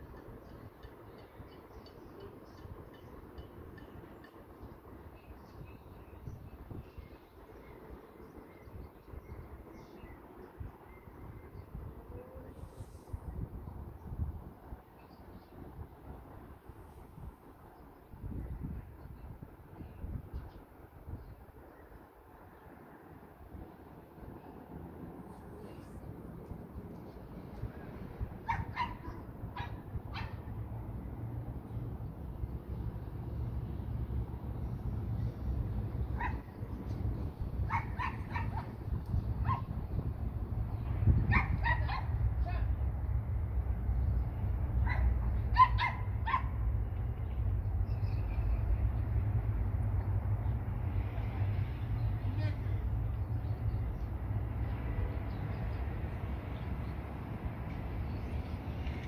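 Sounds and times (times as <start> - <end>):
steady low rumble: 23.3 - 59.0
faint distant voices: 25.2 - 26.4
dog barking: 28.5 - 30.4, 36.2 - 36.5, 37.7 - 38.7, 39.4 - 39.7, 41.3 - 42.1, 44.8 - 46.6.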